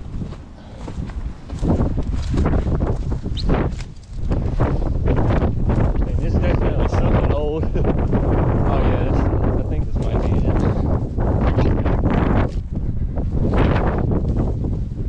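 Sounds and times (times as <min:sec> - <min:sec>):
dry grass rustling and crunching: 0:00.0 - 0:07.0, 0:09.1 - 0:14.8
wind buffeting microphone: 0:00.0 - 0:15.0.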